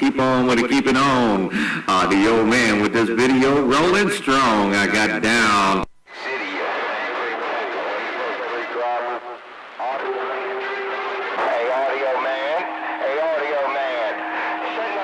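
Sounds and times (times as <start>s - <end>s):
indistinct voices over radio: 0.0s - 15.0s
radio static: 0.0s - 15.0s
steady whistling tones: 10.0s - 15.0s.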